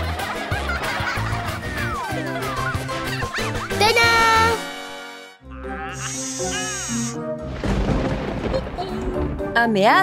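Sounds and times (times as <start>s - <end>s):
background music: 0.0s - 10.0s
thunder rumbling: 7.4s - 9.8s.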